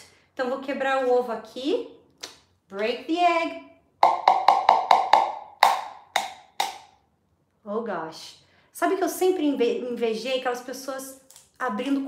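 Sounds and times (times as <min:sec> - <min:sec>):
egg tapping on ceramic mug: 0:04.0 - 0:06.8.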